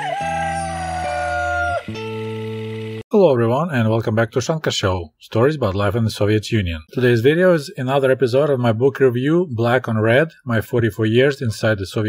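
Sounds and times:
rooster crowing: 0.0s - 2.4s
background music: 0.0s - 3.0s.

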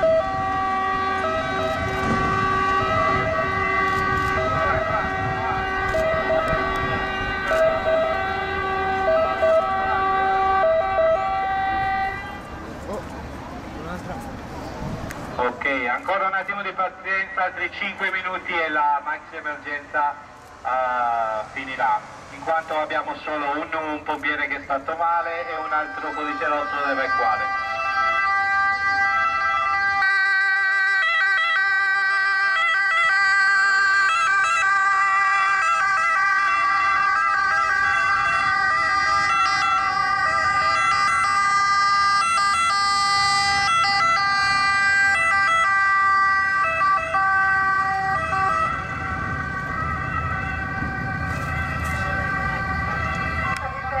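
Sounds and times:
ambulance two-tone sirens: 0.0s - 14.7s, 15.3s - 54.0s
vehicle engine and road rumble: 0.0s - 54.0s.

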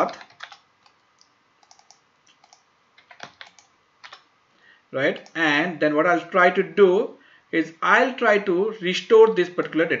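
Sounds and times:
computer keyboard typing: 0.0s - 4.3s.

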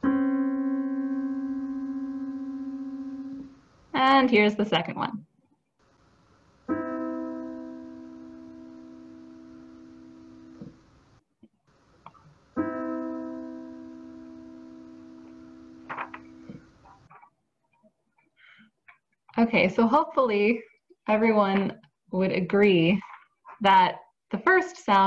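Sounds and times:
two-note musical interval ringing: 0.0s - 3.5s.

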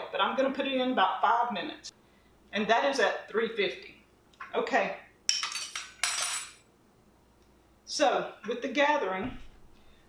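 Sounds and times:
metal spoons clinking: 5.3s - 6.6s.

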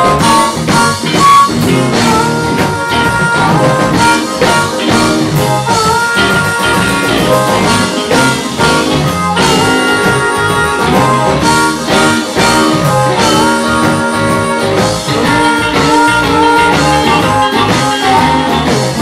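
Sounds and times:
amplified harmonica: 0.0s - 19.0s
bass guitar: 0.0s - 19.0s
drum kit: 0.0s - 19.0s
electric guitars: 0.0s - 19.0s.

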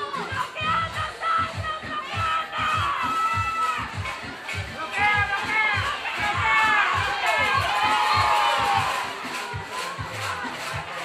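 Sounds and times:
background music with beat: 0.0s - 11.0s
children shouting and cheering: 0.0s - 11.0s.

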